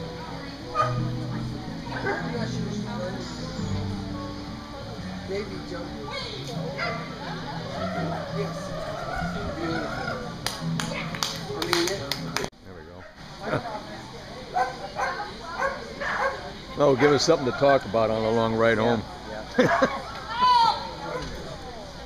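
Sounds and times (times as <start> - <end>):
dog barking in a hall: 0.7 - 1.2, 1.9 - 2.4, 6.8 - 7.1, 14.5 - 17.7.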